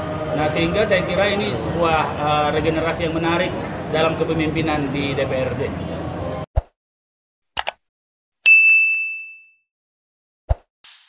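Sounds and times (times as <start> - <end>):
notification bell ding: 8.5 - 9.7.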